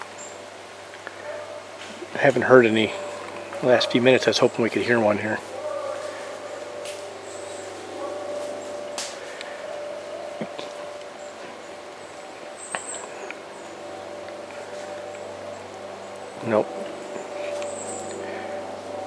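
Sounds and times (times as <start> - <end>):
steady faint hum: 0.0 - 19.0.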